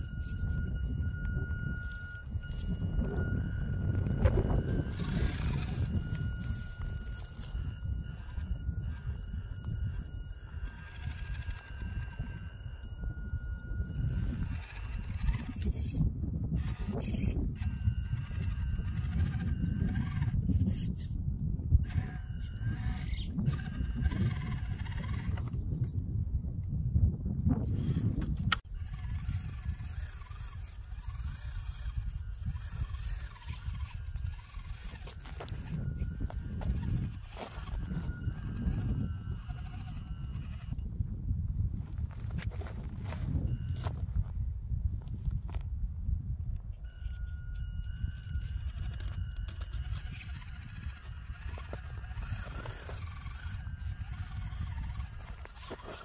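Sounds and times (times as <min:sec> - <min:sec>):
small electric motor whining: 0:00.0 - 0:45.7, 0:46.5 - 0:56.0
wind rumbling on microphone: 0:00.0 - 0:56.0.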